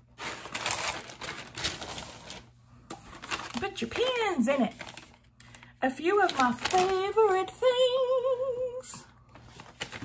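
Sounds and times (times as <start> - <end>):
packaging rustling: 0.0 - 7.3, 9.3 - 10.0.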